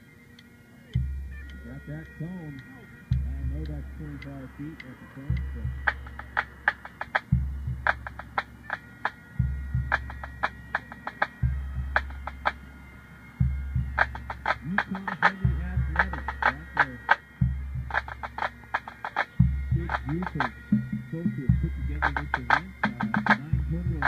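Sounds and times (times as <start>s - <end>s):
tenor drums: 0.4s - 24.0s
bass drum strokes ringing: 1.0s - 12.7s, 13.4s - 24.0s
snare drum strokes: 13.9s - 17.2s, 22.0s - 24.0s.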